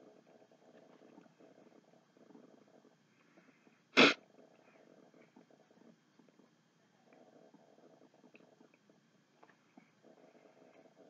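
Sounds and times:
person sneezing: 4.0s - 4.2s.

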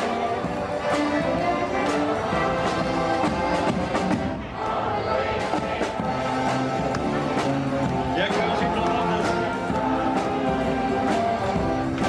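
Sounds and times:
string band marching tune: 0.0s - 12.0s.

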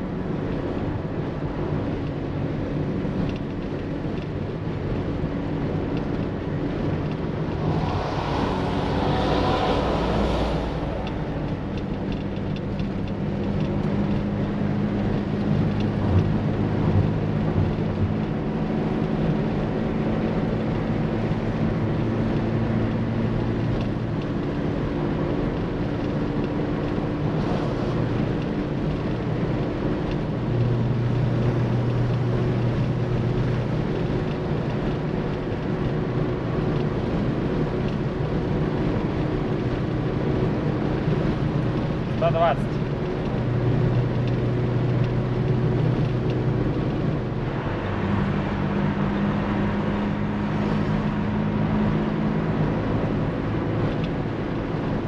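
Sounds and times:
car engine at highway speed: 0.0s - 55.0s
road and wind noise: 0.0s - 55.0s
brief rush of noise: 7.0s - 12.2s.

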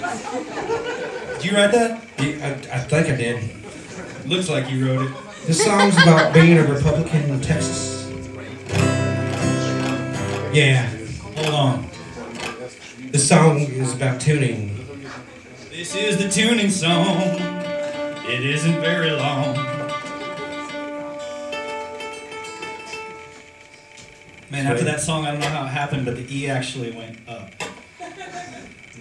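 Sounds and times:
acoustic guitar chord ringing: 5.6s - 11.9s, 15.8s - 26.2s
mandolin strings plucked: 6.0s - 12.6s, 15.8s - 26.2s.

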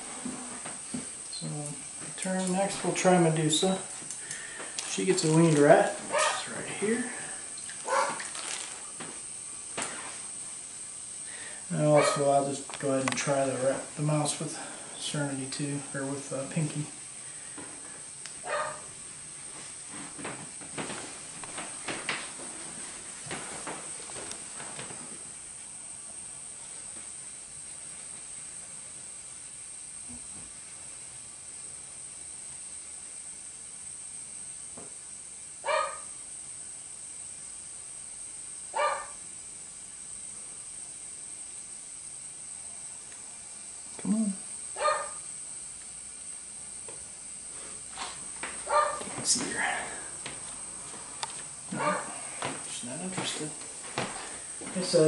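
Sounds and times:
steady high hiss: 0.0s - 55.0s
short high barks: 6.1s - 6.4s, 48.7s - 49.1s, 51.7s - 52.1s
rustling in wood-chip bedding: 7.8s - 9.0s.

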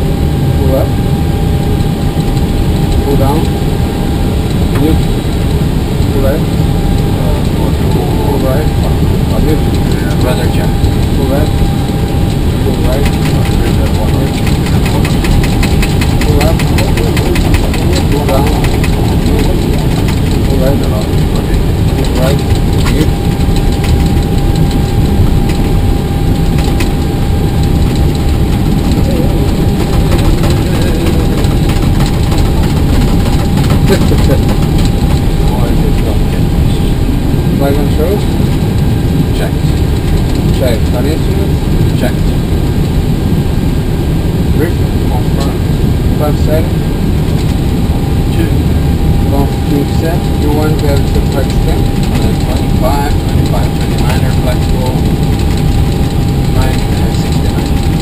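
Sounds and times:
cockpit engine rumble: 0.0s - 58.0s
mid-pitched tone: 6.1s - 40.8s
fast ticking: 12.2s - 36.7s, 49.2s - 58.0s.

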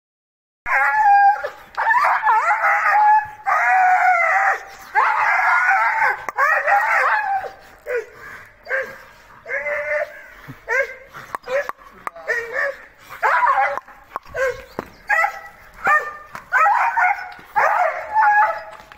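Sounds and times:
dog yelping: 0.7s - 18.8s.

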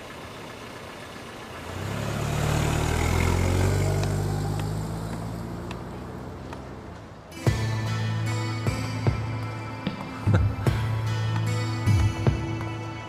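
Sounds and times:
car engine pulling away: 0.0s - 13.0s.

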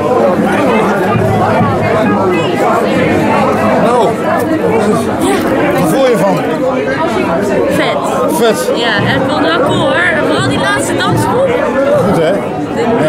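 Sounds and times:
people talking at once: 0.0s - 13.0s.

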